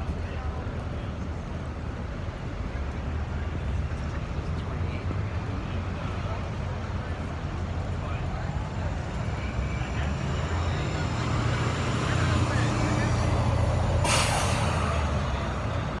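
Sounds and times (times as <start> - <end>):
bus engine rumble: 0.0 - 16.0.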